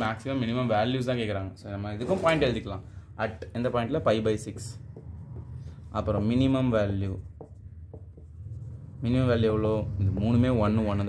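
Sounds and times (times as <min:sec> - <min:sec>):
marker pen writing: 0:04.8 - 0:09.2.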